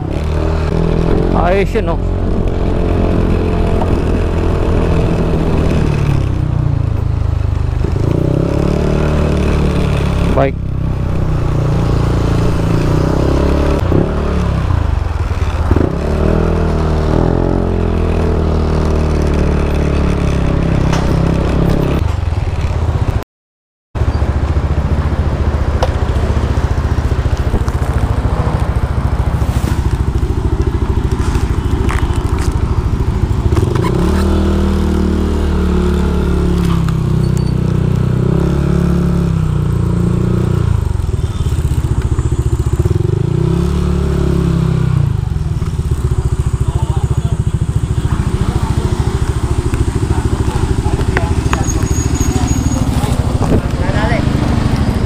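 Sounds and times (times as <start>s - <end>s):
motorcycle engine running: 0.0s - 23.2s, 24.0s - 55.0s
microphone noise: 50.1s - 54.4s.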